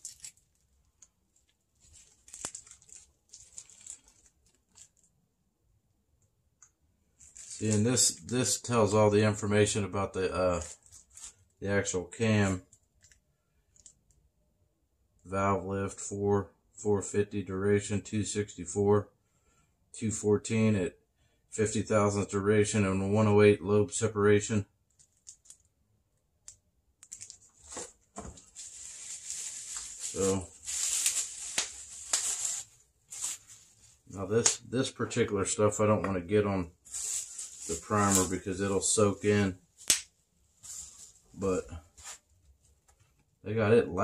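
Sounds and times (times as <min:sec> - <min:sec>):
plastic wrapping crinkling: 0:00.0 - 0:05.2, 0:07.1 - 0:08.6, 0:10.5 - 0:11.6, 0:24.9 - 0:25.7, 0:27.0 - 0:34.6, 0:36.8 - 0:42.3.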